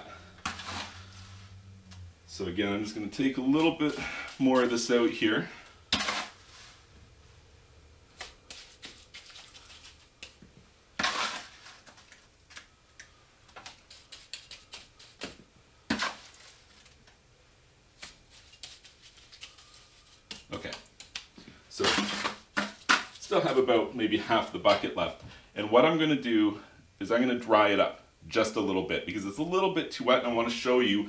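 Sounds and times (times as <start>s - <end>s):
steel trowel scraping mortar: 0.4s - 1.2s, 5.9s - 6.7s, 11.0s - 11.9s.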